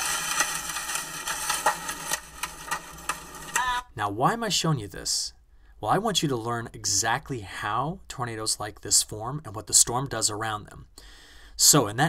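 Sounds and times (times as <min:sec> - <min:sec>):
rain and wind rushing: 0:00.0 - 0:03.5.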